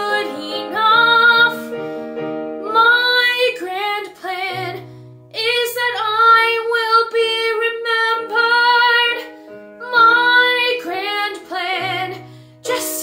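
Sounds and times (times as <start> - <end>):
woman singing with vibrato: 0.0 - 1.8, 2.6 - 13.0
piano accompaniment: 0.0 - 13.0.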